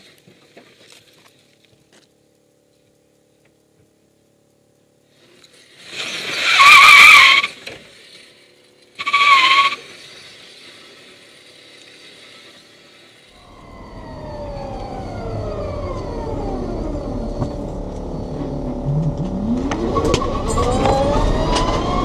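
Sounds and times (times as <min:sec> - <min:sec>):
car tyres squealing: 0:06.4 - 0:07.6, 0:09.0 - 0:10.0, 0:16.0 - 0:22.0
electric car rumble and whine: 0:08.6 - 0:22.0.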